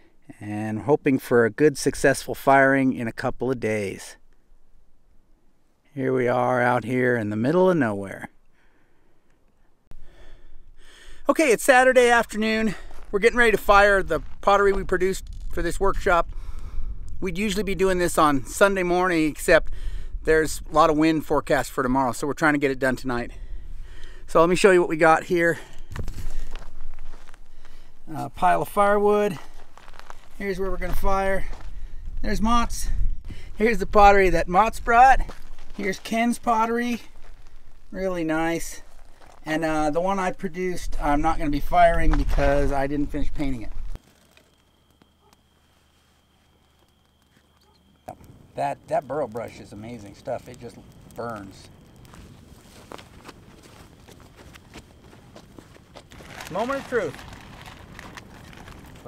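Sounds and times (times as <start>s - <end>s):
wood fire crackling: 9.9s - 59.0s
footsteps on sandy dirt: 12.1s - 15.1s, 24.3s - 44.0s, 52.0s - 59.0s.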